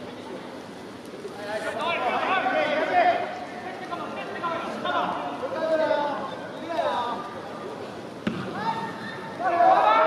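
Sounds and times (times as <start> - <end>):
soccer ball kick thump: 8.2 - 8.6
players shouting: 8.3 - 10.0.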